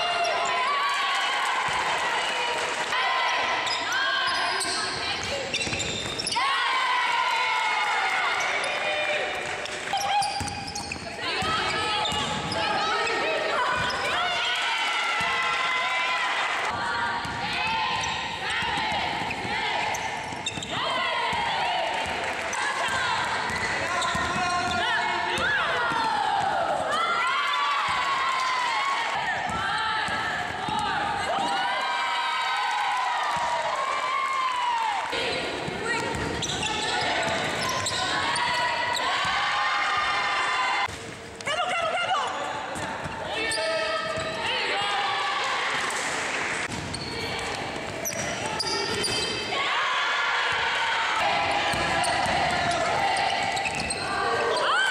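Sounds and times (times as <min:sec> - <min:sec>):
basketball bouncing on court: 0:09.9 - 0:12.7, 0:16.7 - 0:26.6, 0:35.4 - 0:39.4, 0:51.4 - 0:54.1.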